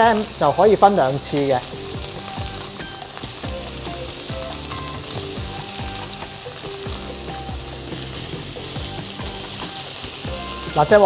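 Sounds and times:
meat sizzling in hot oil: 0.0 - 11.0.

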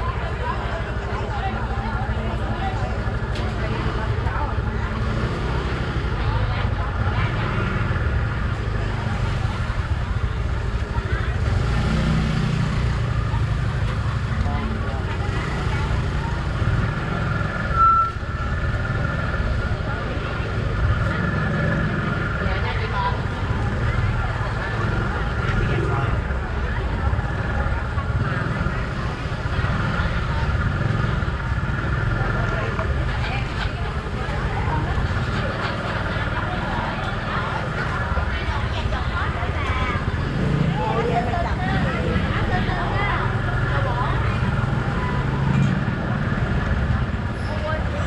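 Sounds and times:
people talking: 0.0 - 48.0
street and traffic rumble: 0.0 - 48.0.

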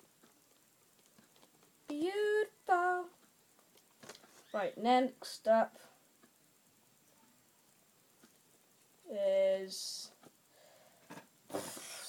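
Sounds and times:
person speaking: 4.4 - 5.9.

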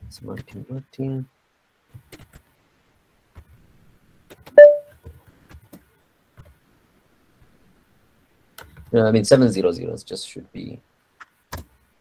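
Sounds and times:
loud electronic beep: 4.6 - 4.9
faint keyboard clicks: 11.2 - 11.8.

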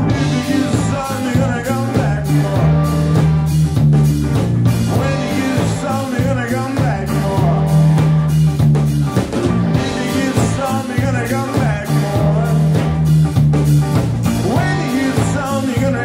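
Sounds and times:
bass line: 0.0 - 16.0
distorted electric guitars: 0.0 - 16.0
drum kit beat: 0.0 - 16.0.

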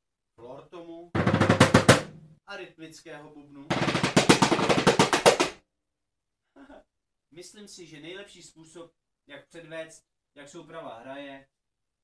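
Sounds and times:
drum kit fast roll: 1.2 - 2.1, 3.7 - 5.6.

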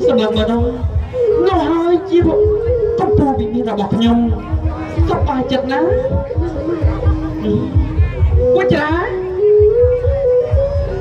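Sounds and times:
drums beating: 0.0 - 11.0.

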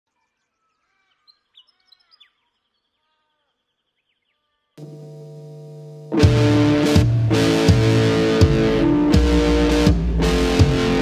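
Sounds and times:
birds chirping and trilling: 0.1 - 4.8
droning music chord: 4.8 - 11.0.

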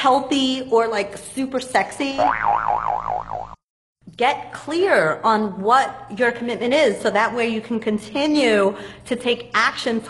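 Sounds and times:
cartoon boing wobbling tone: 2.2 - 3.6.

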